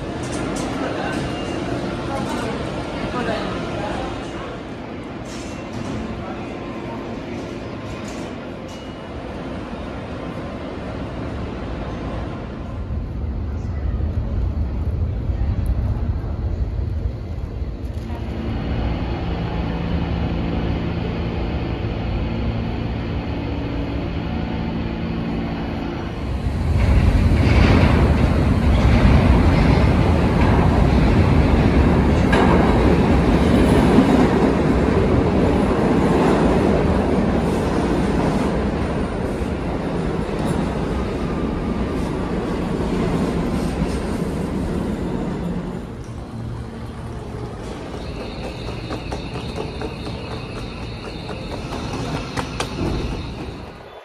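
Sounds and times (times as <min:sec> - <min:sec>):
steel wheels rattling on rails: 0:00.0 - 0:06.3, 0:26.2 - 0:53.9
subway train rumbling: 0:00.0 - 0:54.0.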